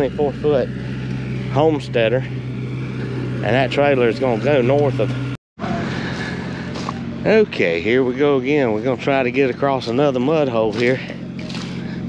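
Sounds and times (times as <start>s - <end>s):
motor humming: 0.0s - 12.0s.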